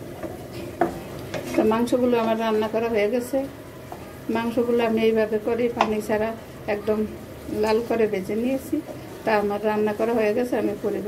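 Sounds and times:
meat sizzling: 0:00.0 - 0:11.0
woman speaking: 0:01.5 - 0:03.6, 0:04.3 - 0:11.0.

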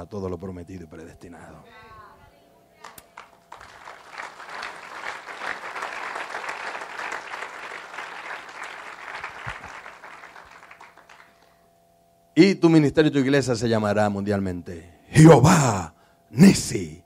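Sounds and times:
congregation applauding: 0:02.8 - 0:11.6.

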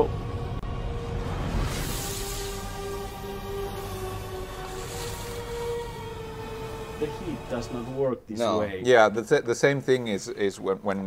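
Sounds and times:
steady low rumble: 0:00.0 - 0:08.0
sustained music tones: 0:00.0 - 0:08.3.

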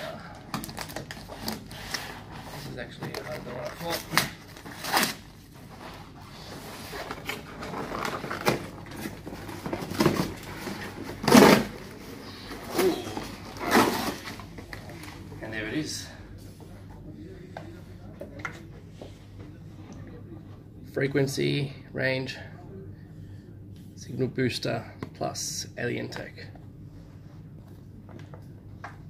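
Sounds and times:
handling cardboard and packaging: 0:00.3 - 0:15.3
cardboard ripping and rustling: 0:03.2 - 0:05.2, 0:06.7 - 0:14.4.

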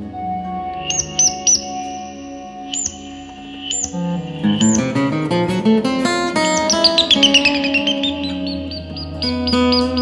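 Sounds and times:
guitar notes through effects pedals: 0:00.0 - 0:10.0
short high chirping blips: 0:00.8 - 0:05.2, 0:06.4 - 0:10.0.

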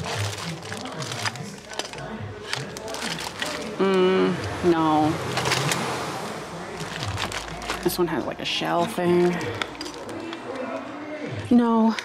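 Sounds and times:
plastic bag crinkling: 0:00.0 - 0:03.8, 0:05.2 - 0:05.8, 0:06.6 - 0:08.4, 0:09.1 - 0:10.6
faint background music: 0:00.0 - 0:12.0.

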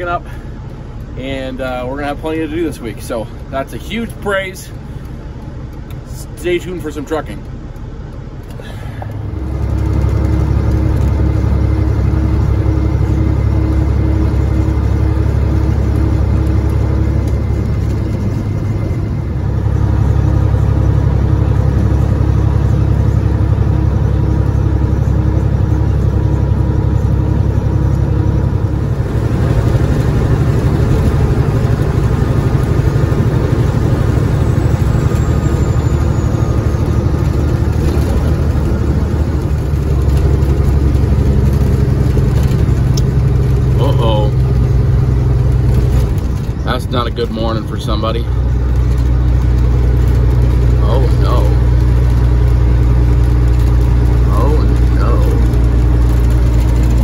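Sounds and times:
diesel truck engine drone: 0:00.0 - 0:57.0
road noise: 0:00.0 - 0:57.0.

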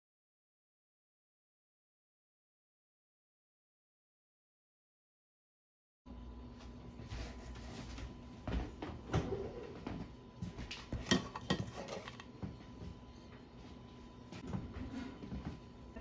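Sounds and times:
metal bakeware knocks and clicks: 0:11.0 - 0:12.2.

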